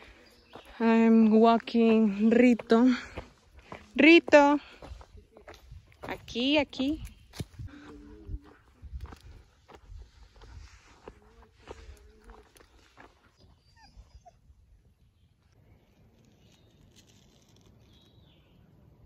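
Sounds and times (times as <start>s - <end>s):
footsteps on dirt trail: 0.0s - 13.7s
dog whining: 13.6s - 14.4s.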